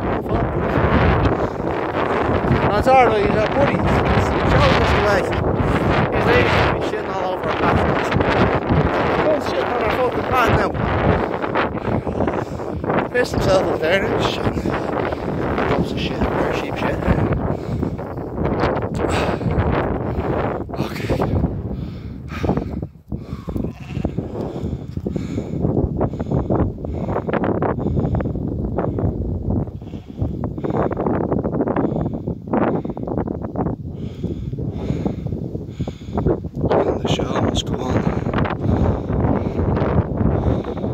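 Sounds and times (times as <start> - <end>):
wind rumbling on microphone: 0.0 - 40.9
sheep bleating: 23.6 - 24.3.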